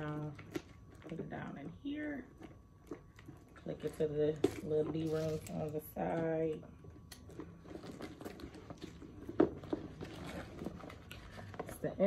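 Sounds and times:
canvas bag rustling: 7.8s - 12.0s.

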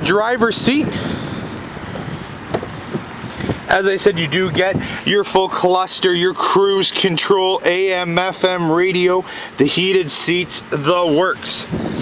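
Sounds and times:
wind noise on microphone: 0.0s - 5.8s, 11.2s - 12.0s.

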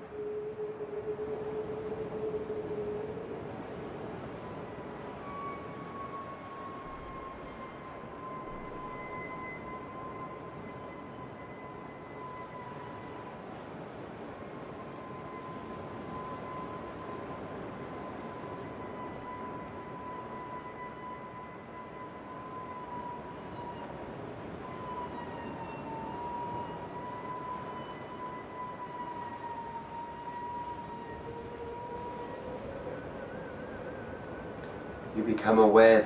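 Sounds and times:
ambient meditation music: 0.0s - 36.0s
faint hiss: 0.0s - 36.0s.

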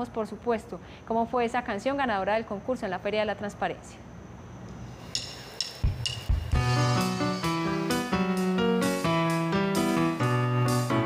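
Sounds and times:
percussion hits and drum thumps: 5.0s - 7.8s
keyboard chords over bass: 6.5s - 11.0s.

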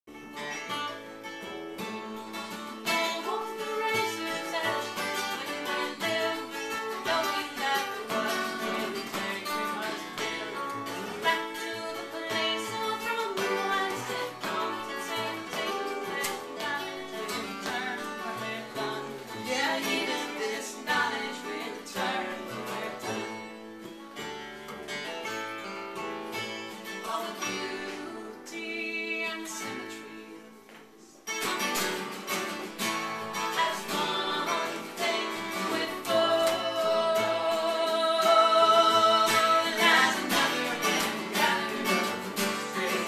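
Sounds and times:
acoustic guitars: 0.0s - 43.0s
woman singing: 1.8s - 23.6s, 26.8s - 31.2s, 33.3s - 43.0s.

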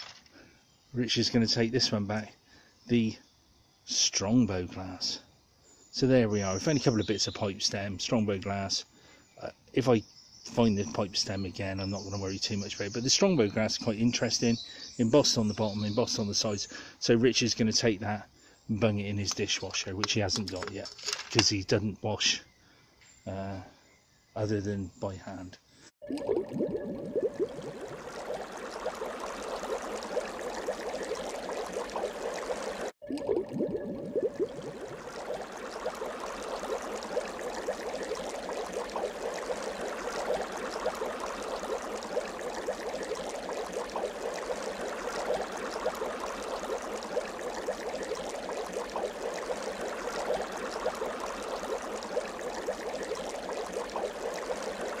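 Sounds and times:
stream trickling and babbling: 0.0s - 55.0s.

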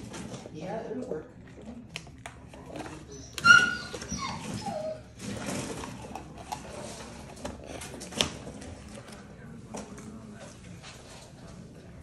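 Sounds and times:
dog whining: 2.8s - 5.9s
dog yelping: 3.1s - 5.2s.

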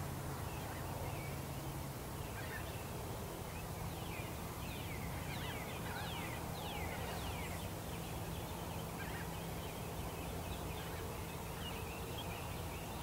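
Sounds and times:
songbirds chirping: 0.0s - 13.0s.

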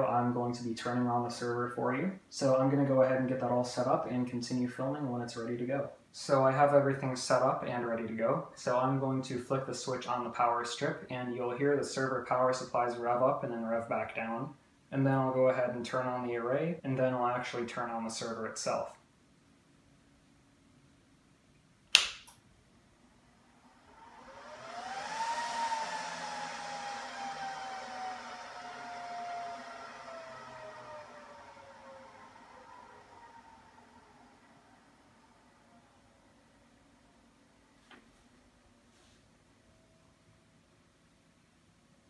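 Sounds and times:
server fans whining: 0.0s - 21.3s, 21.9s - 42.0s
power strip switch click: 21.9s - 22.4s.

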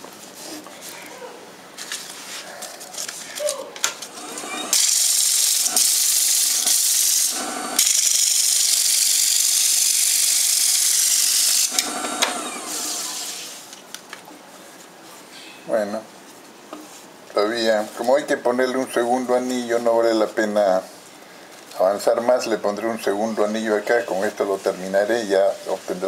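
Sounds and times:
wood lathe hissing: 4.1s - 13.7s.

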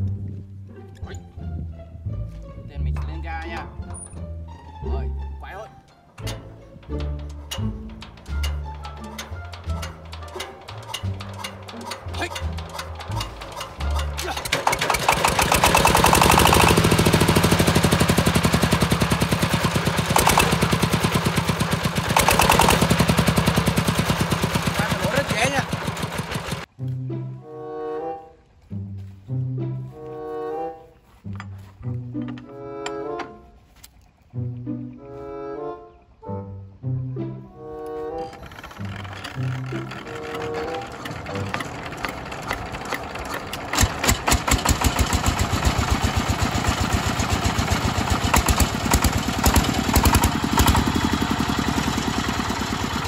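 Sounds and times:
background music with low strings: 0.0s - 43.9s
diesel engine running loud: 6.2s - 26.7s, 38.4s - 53.0s.

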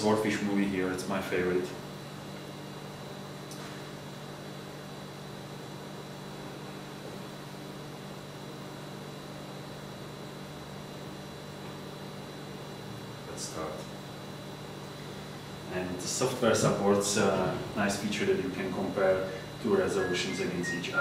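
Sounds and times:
background hum and hiss: 0.0s - 21.0s
faint high whine: 0.0s - 21.0s.

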